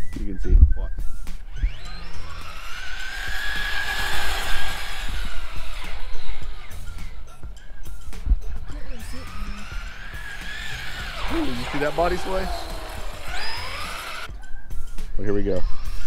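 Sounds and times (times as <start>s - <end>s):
rc truck electric motor whine: 1.2s - 8.0s, 8.6s - 14.3s, 15.5s - 16.0s.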